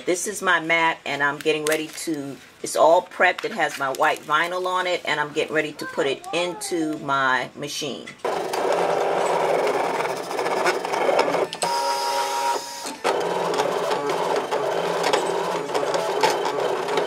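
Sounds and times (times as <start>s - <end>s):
cutting machine clicking whir: 8.2s - 17.0s.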